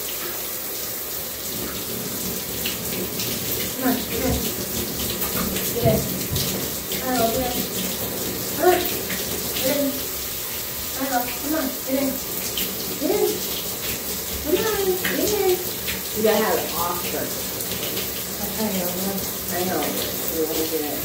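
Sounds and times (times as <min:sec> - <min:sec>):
tap water filling bathtub: 0:00.0 - 0:21.0.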